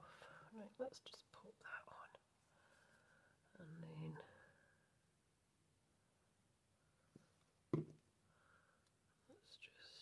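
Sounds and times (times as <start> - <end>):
plastic bottle put down on wood: 7.7 - 8.0.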